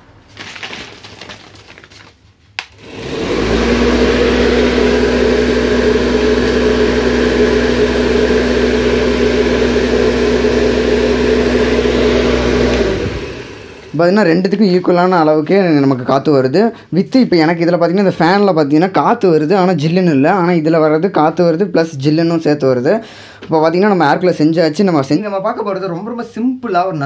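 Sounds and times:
electric fan motor hum: 0:02.6 - 0:16.1.

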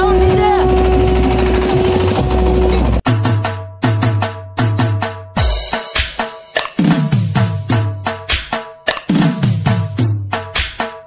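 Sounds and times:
loud bass-heavy music on loudspeakers: 0:03.1 - 0:11.0.

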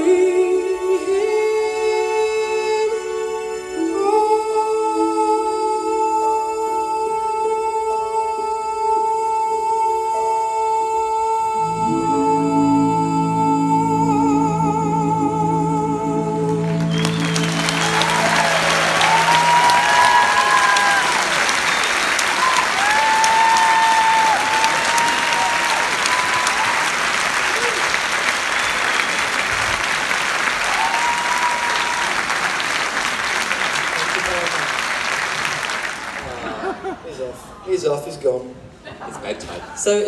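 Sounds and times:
song's final chord: 0:11.6 - 0:21.4
audience applauding and cheering: 0:16.5 - 0:36.9
shouted voices: 0:17.8 - 0:21.6, 0:22.2 - 0:26.9.

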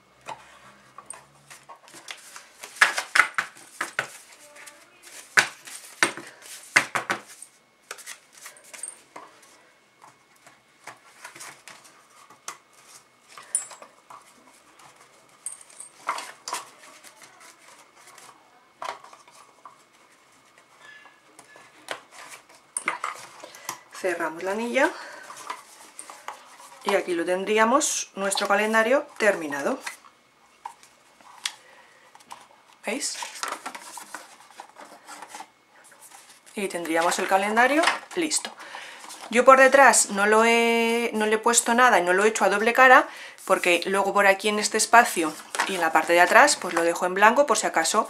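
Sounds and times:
card pages rustling and tapping: 0:01.1 - 0:09.4, 0:33.1 - 0:39.4, 0:45.2 - 0:46.9.

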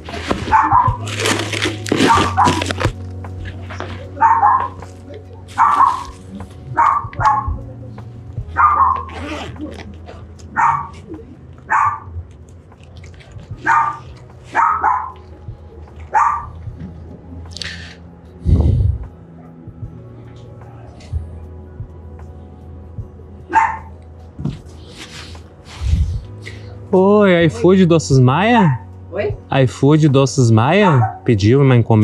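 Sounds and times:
steady low hum: 0:00.0 - 0:29.5
dog barking: 0:00.3 - 0:01.1, 0:02.0 - 0:02.8, 0:04.2 - 0:04.9, 0:05.5 - 0:07.6, 0:08.5 - 0:09.5, 0:10.5 - 0:11.1, 0:11.7 - 0:12.2, 0:13.6 - 0:15.2, 0:16.0 - 0:16.7, 0:23.5 - 0:24.0, 0:30.8 - 0:31.3.

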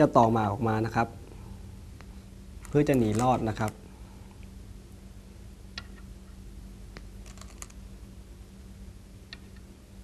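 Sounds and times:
stones clicking on wooden board: 0:07.2 - 0:07.8.

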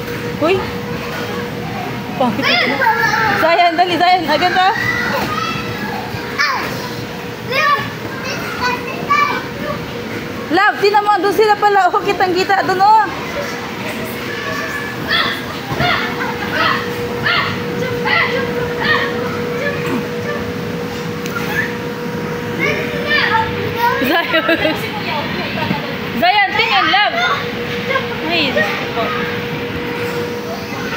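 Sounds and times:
steady background hum: 0:00.0 - 0:30.9
children's voices calling: 0:00.9 - 0:30.9
children shouting: 0:04.6 - 0:09.8, 0:13.2 - 0:20.5.

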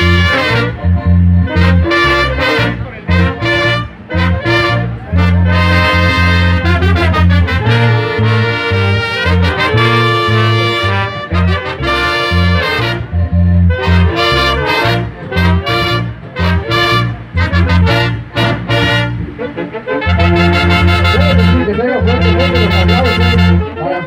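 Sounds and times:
brass band playing: 0:00.0 - 0:24.0.

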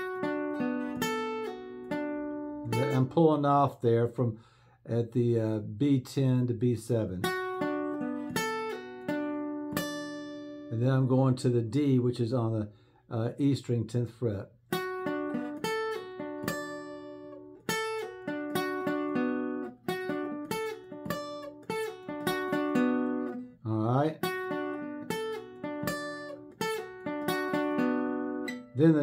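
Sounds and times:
acoustic guitar picked melody: 0:00.0 - 0:05.3, 0:05.9 - 0:12.2, 0:14.6 - 0:29.0.

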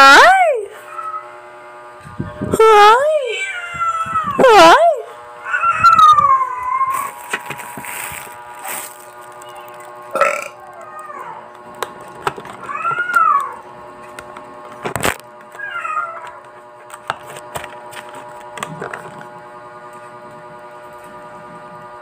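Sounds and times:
cat meowing: 0:03.3 - 0:04.5, 0:05.4 - 0:07.2, 0:12.7 - 0:13.6, 0:15.6 - 0:16.4
plastic bag rustling: 0:06.8 - 0:10.1.

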